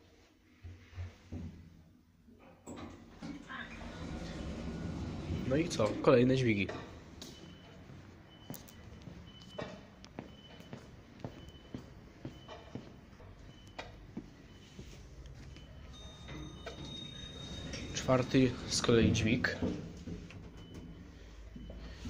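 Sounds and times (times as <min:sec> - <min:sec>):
footsteps on concrete floor: 0:07.2 - 0:15.7.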